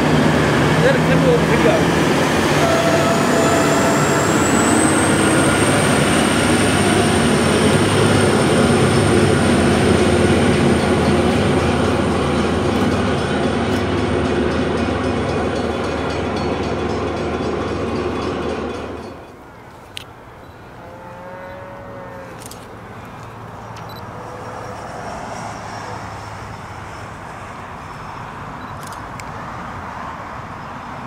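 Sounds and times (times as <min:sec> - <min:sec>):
train carriages rumbling past: 0:00.0 - 0:31.0.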